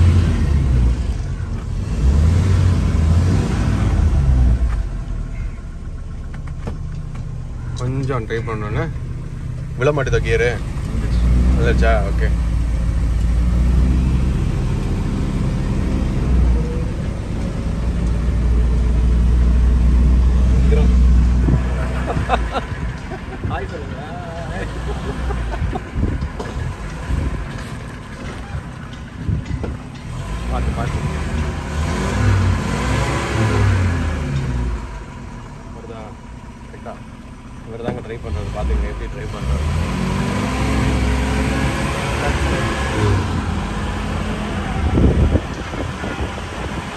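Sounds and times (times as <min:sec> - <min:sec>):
car engine pulling away: 0:00.0 - 0:46.9.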